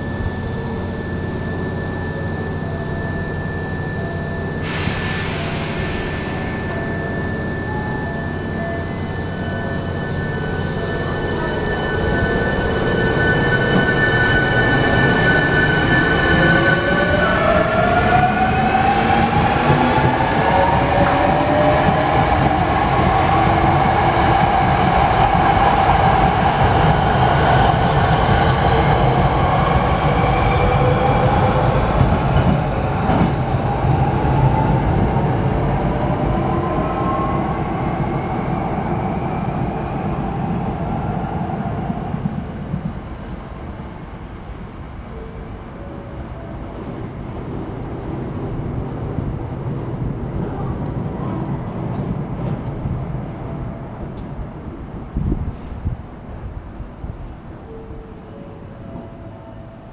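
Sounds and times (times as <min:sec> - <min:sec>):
train wheels rumbling on rails: 0:00.0 - 0:44.6.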